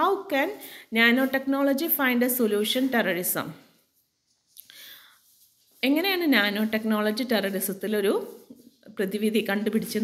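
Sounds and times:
person speaking: 0.0 - 3.7, 4.5 - 10.0
breath drawn through mouth: 4.6 - 5.3.

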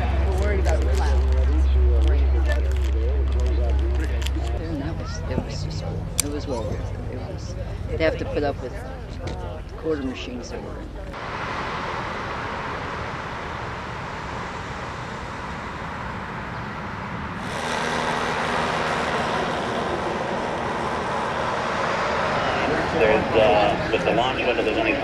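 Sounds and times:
road traffic noise: 0.0 - 25.0.

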